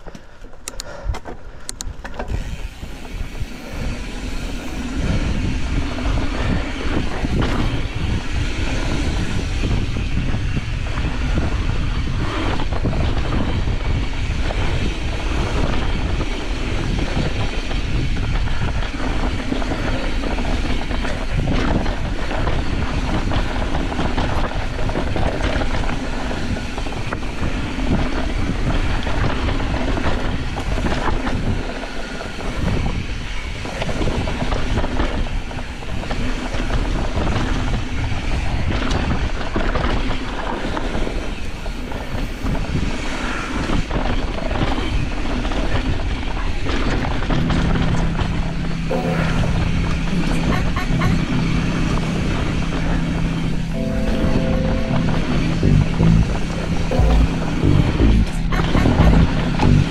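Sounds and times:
wind rushing over microphone: 1.0s - 48.9s.

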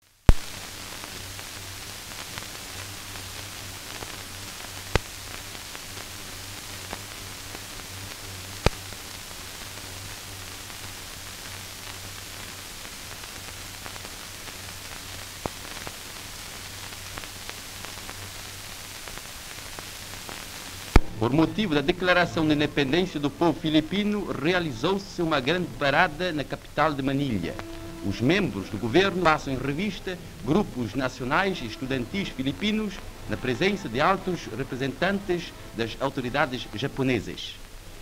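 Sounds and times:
film soundtrack hiss and hum: 0.0s - 38.0s.

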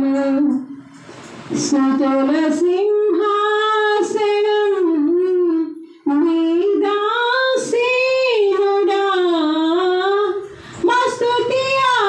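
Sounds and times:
woman singing unaccompanied: 0.0s - 0.7s, 1.6s - 12.0s.

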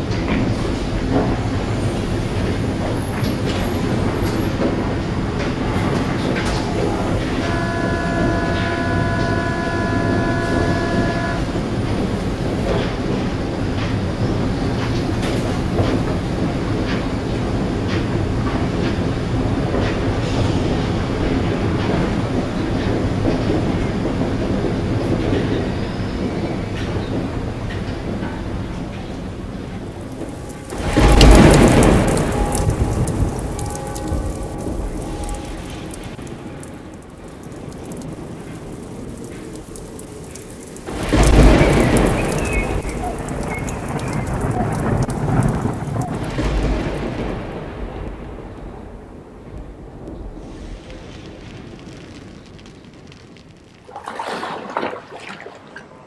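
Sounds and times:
metro train wheels rumbling: 0.0s - 52.5s
loud rush of noise: 0.8s - 19.6s
steady multi-note tone: 6.7s - 12.0s.

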